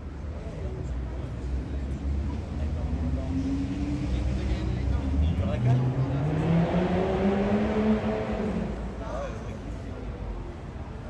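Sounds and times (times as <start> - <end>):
car engine revving: 3.4 - 9.0.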